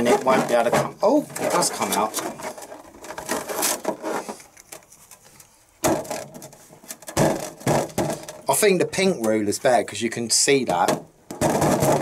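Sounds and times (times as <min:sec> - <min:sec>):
balloons rubbing and bumping: 0:00.0 - 0:04.4, 0:05.8 - 0:08.6, 0:10.7 - 0:12.0
louder thuds: 0:07.1 - 0:08.5, 0:10.7 - 0:12.0.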